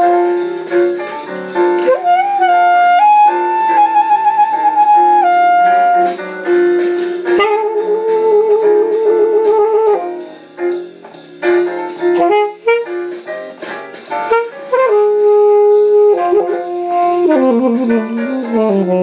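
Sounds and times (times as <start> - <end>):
alto saxophone jazz line: 0.0 - 19.0.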